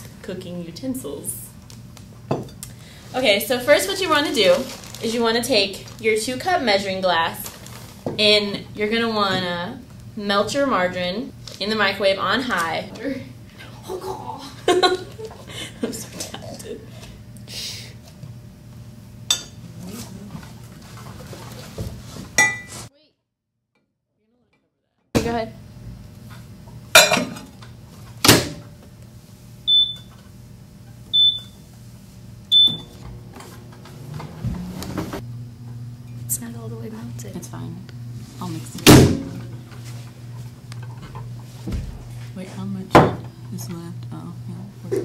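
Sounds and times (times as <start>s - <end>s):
steady low hum: 0.0s - 22.7s, 25.2s - 45.0s.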